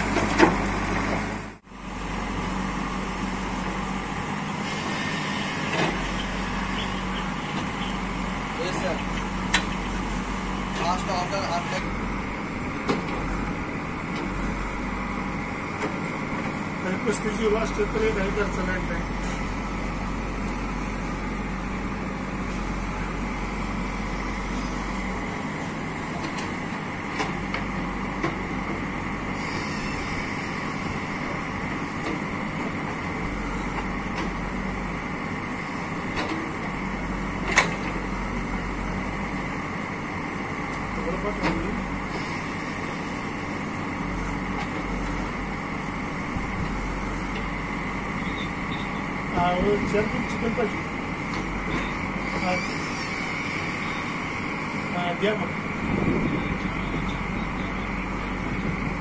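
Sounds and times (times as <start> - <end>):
diesel engine under load: 0.0 - 59.0.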